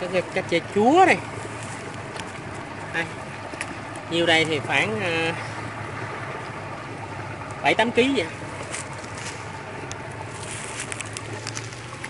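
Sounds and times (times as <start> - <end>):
low engine drone: 0.0 - 12.0.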